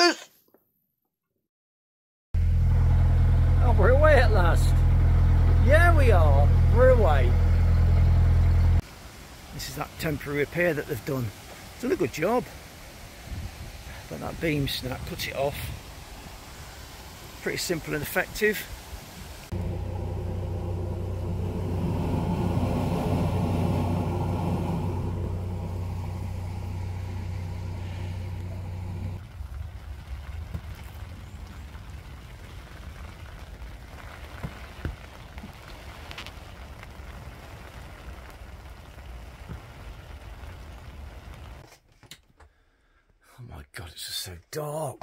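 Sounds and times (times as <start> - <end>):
loud engine drone: 2.4 - 8.8, 19.5 - 29.2
rain hissing: 2.6 - 41.6.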